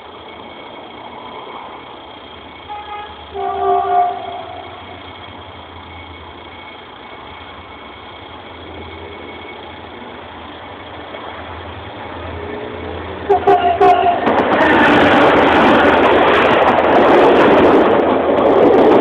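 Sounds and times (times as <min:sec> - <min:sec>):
locomotive engine rumble: 0:00.0 - 0:19.0
locomotive horn: 0:02.6 - 0:04.8, 0:13.2 - 0:15.0.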